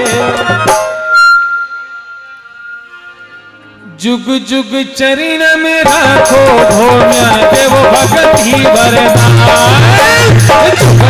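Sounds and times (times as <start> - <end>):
high reedy instrumental note: 0.1 - 3.7.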